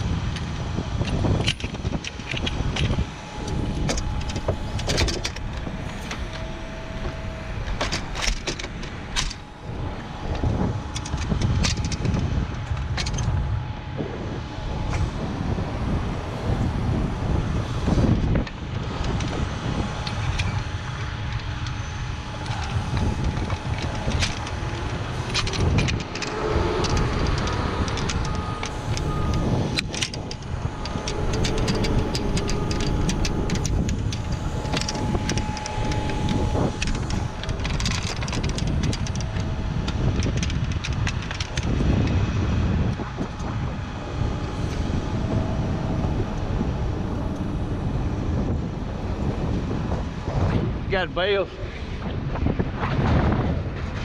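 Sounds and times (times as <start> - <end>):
steady low drone: 0.0 - 54.0
wind buffeting microphone: 0.0 - 54.0.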